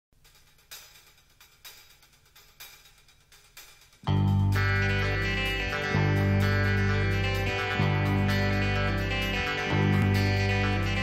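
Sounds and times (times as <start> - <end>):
quiet hi-hat strokes: 0.2 - 11.0.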